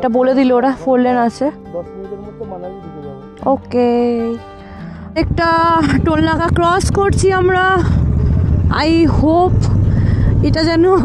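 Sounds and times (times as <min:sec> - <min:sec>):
motorcycle engine rumble: 0:05.2 - 0:11.0
wind noise: 0:05.2 - 0:11.0.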